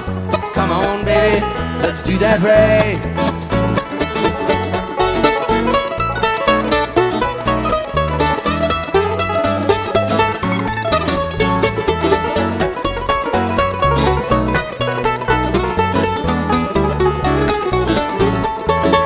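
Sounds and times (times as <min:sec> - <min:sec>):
banjo notes: 0:00.0 - 0:19.0
fast-picked mandolin: 0:00.0 - 0:19.0
guitar: 0:00.0 - 0:19.0
upright bass: 0:00.0 - 0:19.0.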